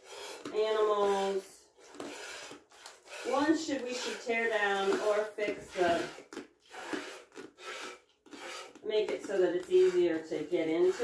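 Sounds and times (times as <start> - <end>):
milk squirting into a pail: 0.0 - 11.0.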